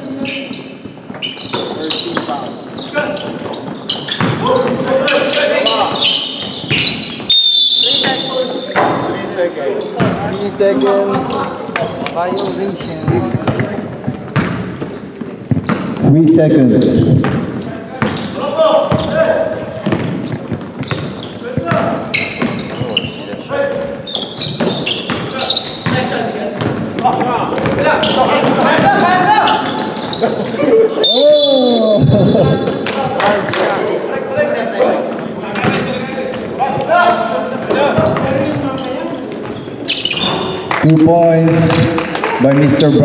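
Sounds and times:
players' voices echoing: 0.0s - 43.0s
basketball bouncing on hardwood floor: 4.2s - 4.8s, 13.0s - 16.0s, 19.8s - 23.1s.

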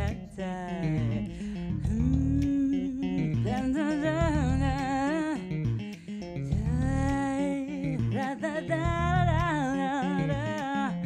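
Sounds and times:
woman singing wordless notes: 0.0s - 5.5s, 6.5s - 11.0s
electric bass guitar: 0.0s - 11.0s.

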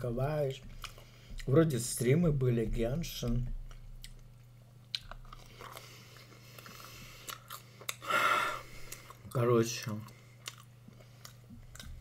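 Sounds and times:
faint low hum: 0.0s - 12.0s
chewing food with crunches: 3.1s - 8.0s, 8.7s - 12.0s.

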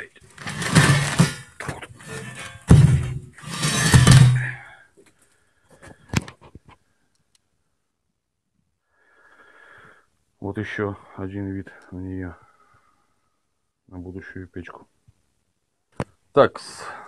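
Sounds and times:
steel pipe scraping on concrete: 0.3s - 4.6s
steel pipe thunk on concrete: 2.0s - 4.6s.

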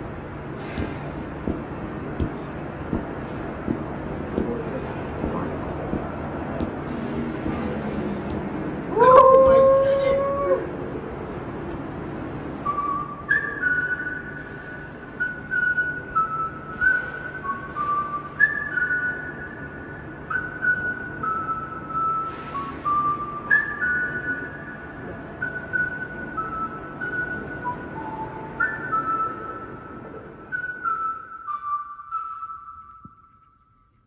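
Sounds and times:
whistled melody: 12.6s - 33.8s.

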